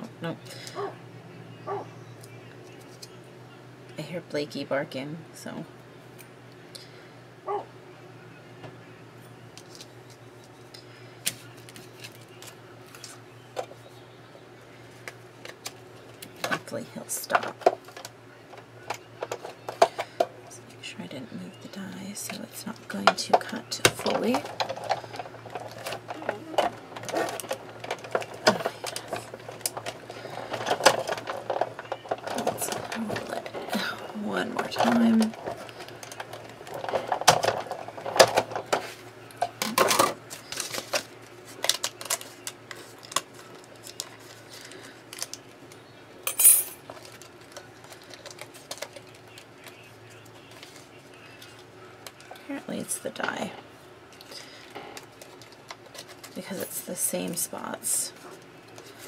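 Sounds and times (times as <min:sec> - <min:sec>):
rolling mechanical noise: 0:00.0 - 0:59.0.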